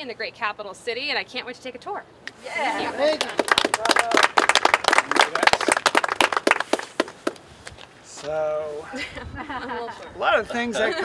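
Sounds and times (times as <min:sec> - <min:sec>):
crowd clapping: 0:03.0 - 0:07.4.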